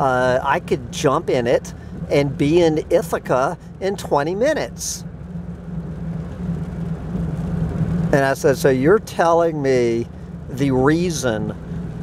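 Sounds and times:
road noise rushing: 0.0 - 12.0
truck engine hum: 0.0 - 12.0.

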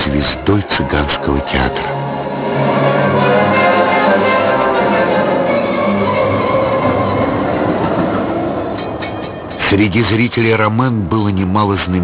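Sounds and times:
tram running on rails: 0.0 - 12.0.

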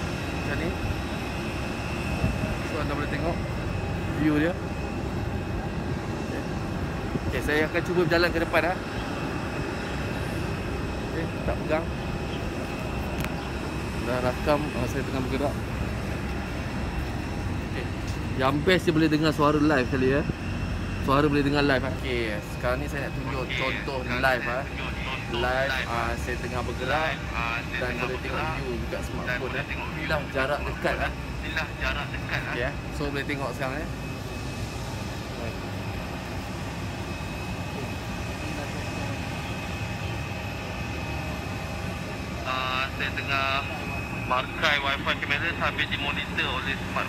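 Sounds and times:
faint high whine: 0.0 - 47.0
low outdoor rumble: 0.0 - 47.0.

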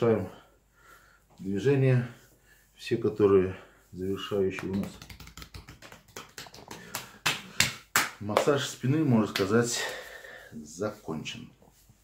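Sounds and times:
hands slapping bare back: 4.3 - 10.0.

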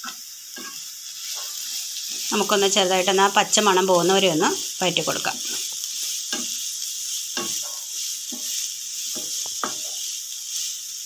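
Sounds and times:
frying sizzle: 0.0 - 11.0.

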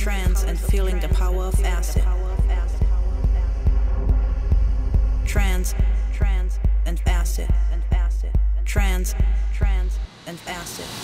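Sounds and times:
deep sustained bass: 0.0 - 10.1
kick drum: 0.0 - 10.1
hard trance music: 0.0 - 11.0.

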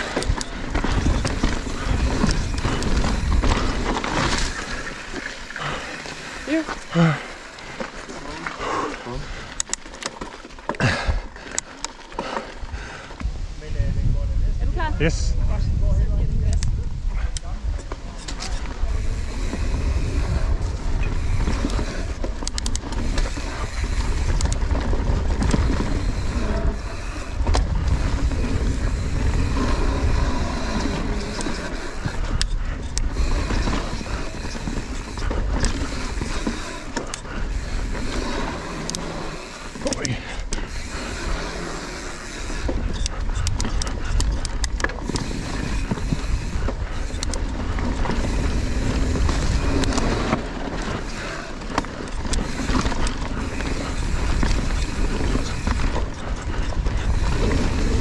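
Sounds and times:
bike rattling and clicking: 0.0 - 13.8, 14.7 - 58.0
wind and tyres rumbling on dirt: 0.0 - 58.0.

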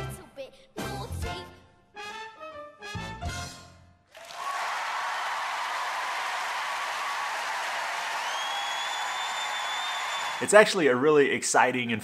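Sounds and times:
audience applause and cheering: 4.1 - 10.8
high whistle: 8.2 - 10.4.

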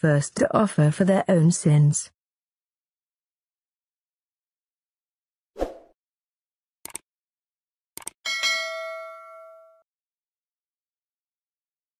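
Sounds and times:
bright bell ding: 8.3 - 9.8.

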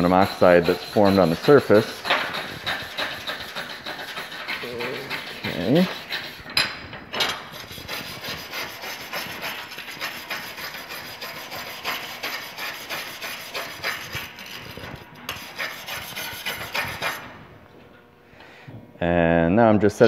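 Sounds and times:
wire brush scrubbing metal plate: 0.0 - 6.6, 7.3 - 17.3.

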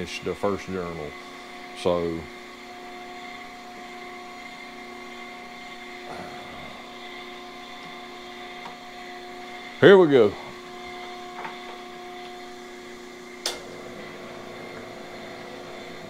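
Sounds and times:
grinder motors humming: 0.0 - 16.0.

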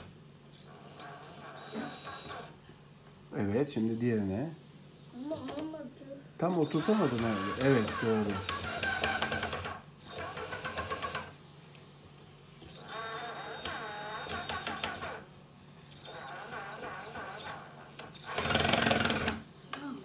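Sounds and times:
cordless drill driving screws: 0.6 - 2.5, 6.6 - 11.3, 12.7 - 15.2, 15.9 - 19.4.

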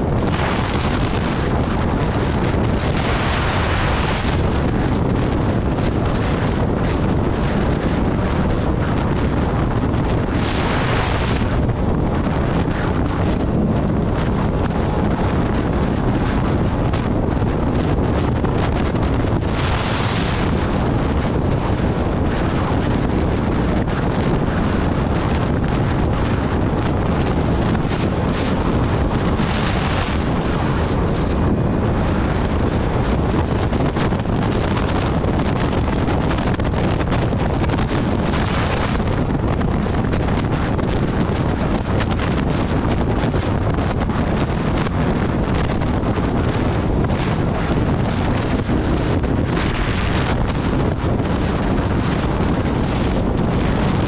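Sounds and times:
loud wind rushing over microphone: 0.0 - 54.0.

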